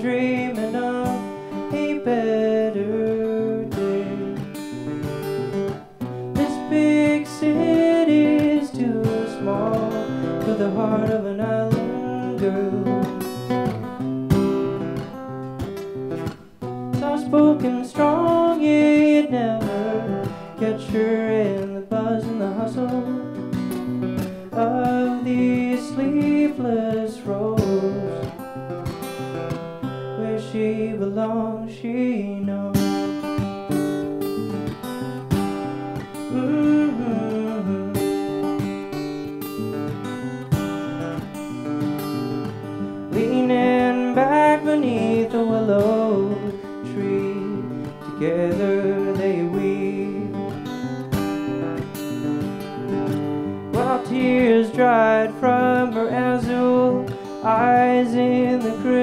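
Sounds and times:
man singing folk song: 0.0 - 59.0
strummed acoustic guitar: 0.0 - 59.0.

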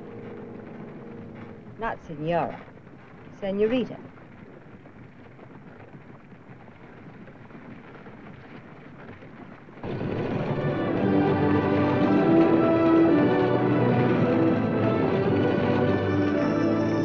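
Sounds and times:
orchestral film music: 9.8 - 17.0
stagecoach rumbling rattle: 9.8 - 17.0.

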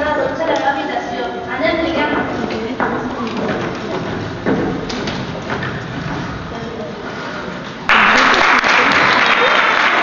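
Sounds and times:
children's voices: 0.0 - 4.2
footsteps on stage floor: 1.8 - 7.9.

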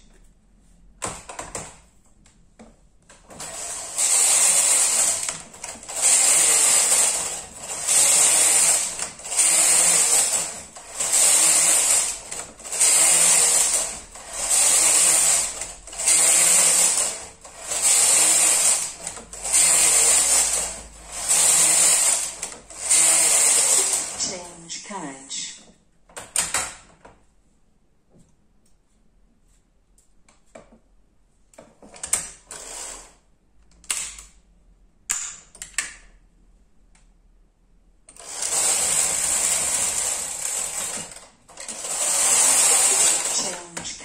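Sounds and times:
knitting machine carriage rattling: 3.3 - 24.4, 38.1 - 44.0.

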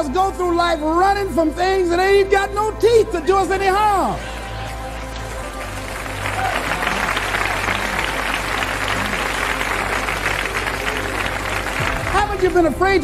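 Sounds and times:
soft background music: 0.0 - 13.0
audience applauding: 4.1 - 12.9.

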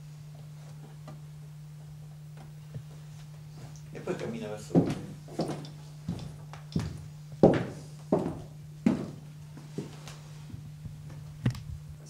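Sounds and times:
steady low hum: 0.0 - 12.0
footsteps on wooden floor: 3.6 - 11.7.

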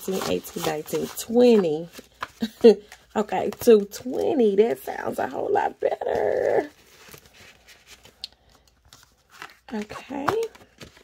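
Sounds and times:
paper bills rustling: 0.0 - 4.3, 5.9 - 11.0.

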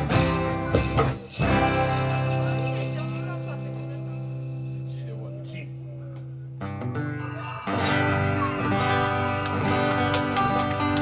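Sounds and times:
live rock band: 0.0 - 2.8, 6.7 - 11.0.

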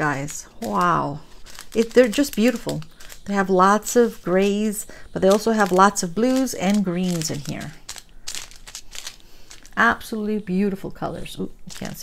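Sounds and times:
plastic bags crinkling: 0.0 - 10.2, 11.2 - 12.0.

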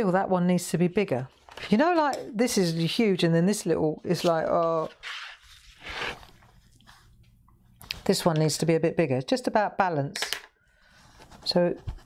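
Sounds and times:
paper rustle: 4.1 - 7.1
pencil scratching on paper: 11.0 - 12.0.

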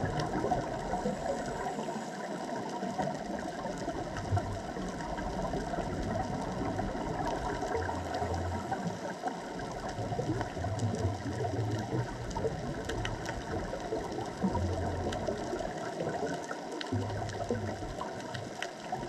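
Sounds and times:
faint clicks: 0.0 - 19.0
underwater crackling hiss: 0.0 - 19.0.

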